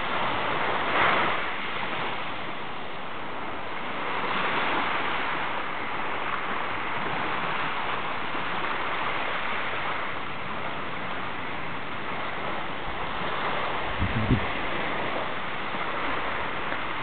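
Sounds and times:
surf rushing on shore: 0.0 - 17.0.

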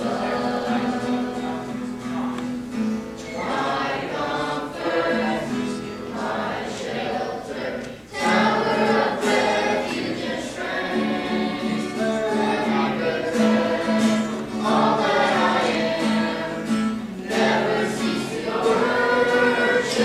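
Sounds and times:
choir singing worship song: 0.0 - 20.0.

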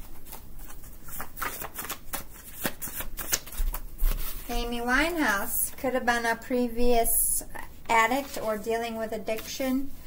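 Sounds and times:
cards being shuffled: 0.0 - 5.8, 8.1 - 8.6.

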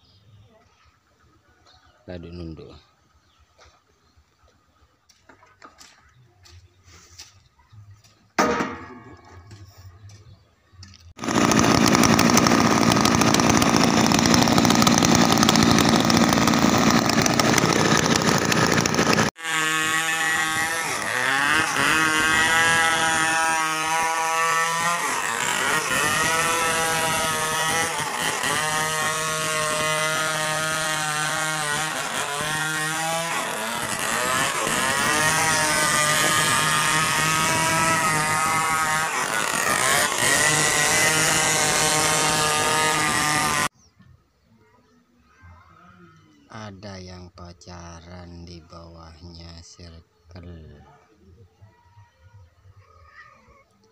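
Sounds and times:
chainsaw cutting log: 11.1 - 43.7.

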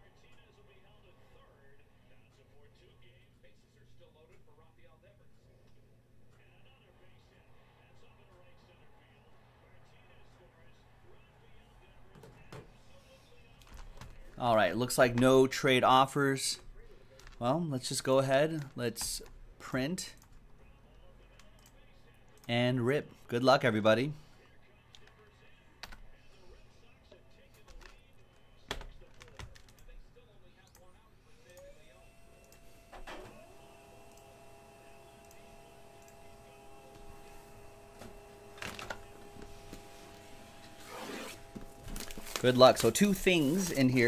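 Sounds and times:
distant indistinct speech: 24.3 - 41.9
laser printer whine and hum: 31.4 - 43.5
steady printer tone: 31.6 - 43.5.

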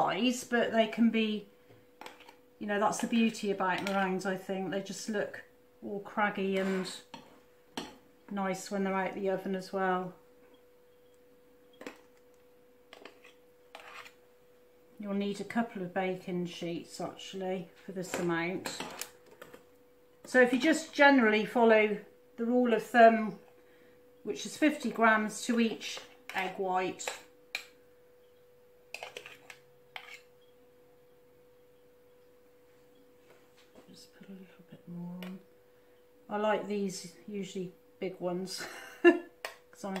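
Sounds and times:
faint steady hum: 0.0 - 40.0
metal spoons scraping: 6.5 - 7.9, 12.9 - 14.2, 18.0 - 19.6, 28.3 - 30.5.

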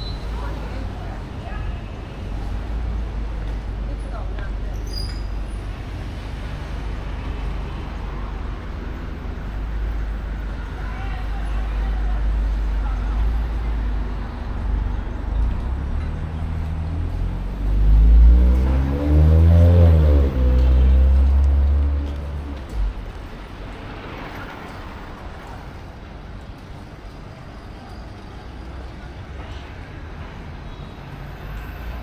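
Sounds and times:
traffic rumble: 0.0 - 32.0
faint passing voices: 10.5 - 14.8
vehicle engine passing close: 15.4 - 23.1.

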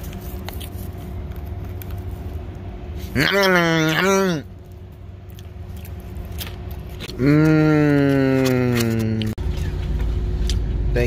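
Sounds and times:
vehicle engine idling: 0.0 - 11.0
man humming while eating: 7.1 - 9.4.

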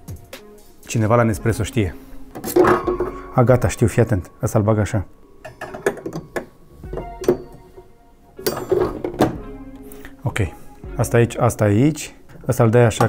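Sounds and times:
quiet background music: 0.0 - 13.0
metal clicks and knocks: 2.3 - 3.2, 5.4 - 7.8, 8.4 - 9.4.

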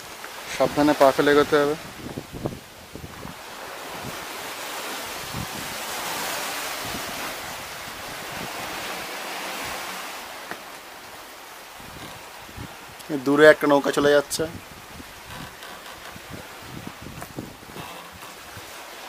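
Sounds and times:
surf washing over rocky shore: 0.0 - 19.0
wind: 0.0 - 19.0.

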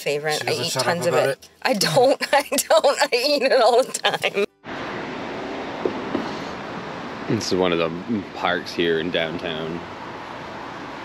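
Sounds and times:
rushing outdoor background noise: 0.0 - 11.0.

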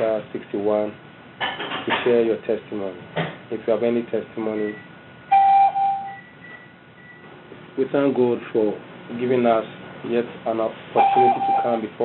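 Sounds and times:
electronic telephone beep: 4.6 - 7.2, 11.0 - 11.7.

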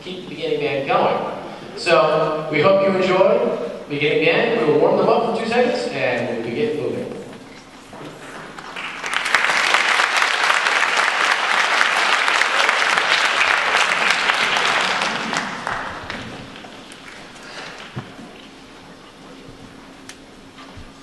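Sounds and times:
audience applauding: 8.2 - 18.5.

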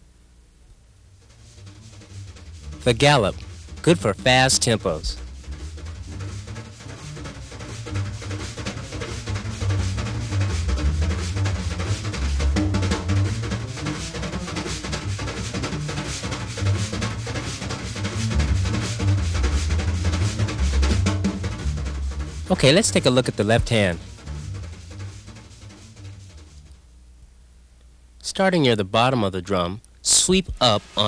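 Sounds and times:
low bass line: 0.9 - 27.0
wire brushes on snare drum: 1.2 - 26.8, 30.1 - 31.0.

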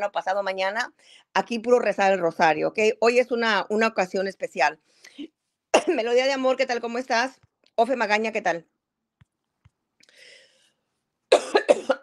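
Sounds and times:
person coughing: 5.8 - 6.1, 11.3 - 12.0
faint breath: 10.0 - 10.9.

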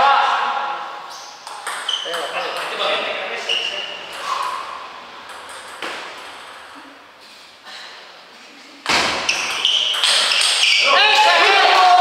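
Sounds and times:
table tennis ball bouncing: 1.4 - 3.1, 4.1 - 6.9, 8.9 - 10.8.

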